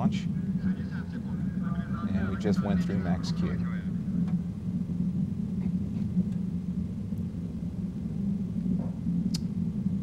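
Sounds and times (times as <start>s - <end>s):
distant rocket engine rumble: 0.0s - 10.0s.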